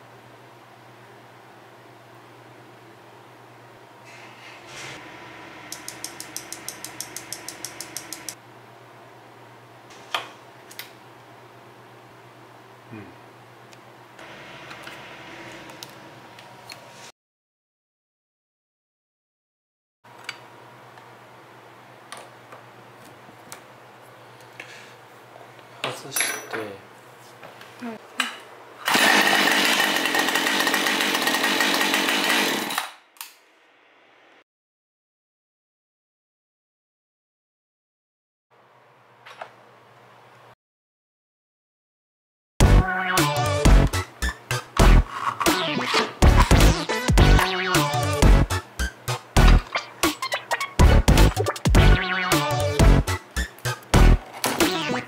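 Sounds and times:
faint hum: 0.0 - 17.0
chainsaw engine running: 28.8 - 32.8.

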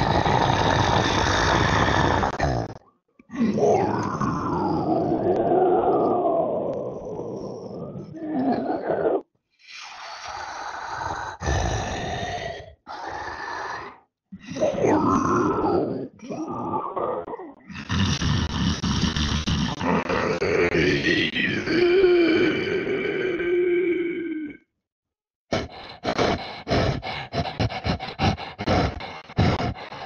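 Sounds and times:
creature growling: 0.0 - 24.6, 25.5 - 30.0.

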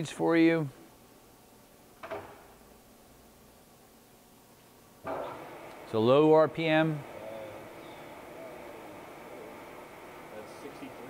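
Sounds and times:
faint steady background noise: 0.0 - 11.0.

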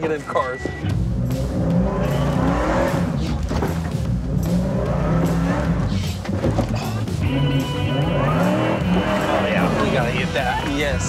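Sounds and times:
background music: 0.0 - 11.0
pickup engine revving hard: 1.0 - 11.0.

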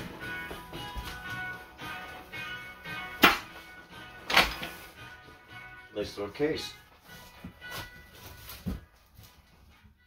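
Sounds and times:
background music: 0.0 - 10.0
guitar case scuffing: 7.1 - 9.7.

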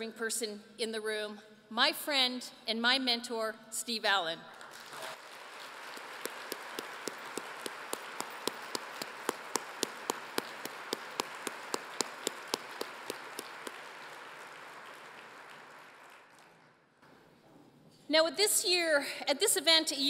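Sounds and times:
close hands clapping steadily: 4.6 - 16.8
audience applauding: 4.7 - 16.8.

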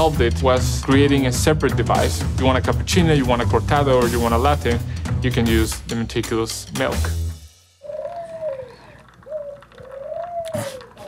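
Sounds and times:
birds cooing: 7.8 - 11.0.

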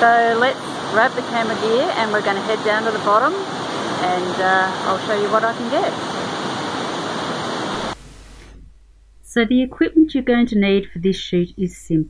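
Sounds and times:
waterfall rushing: 0.1 - 8.4.

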